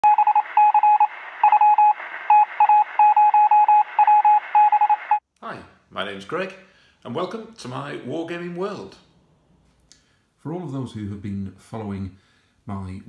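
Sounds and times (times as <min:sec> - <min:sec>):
morse code beeps: 0:00.0 - 0:05.2
radio hiss: 0:00.2 - 0:05.2.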